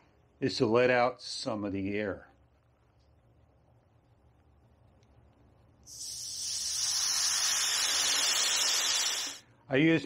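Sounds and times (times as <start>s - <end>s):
air hissing from tyre valve: 5.9s - 9.4s.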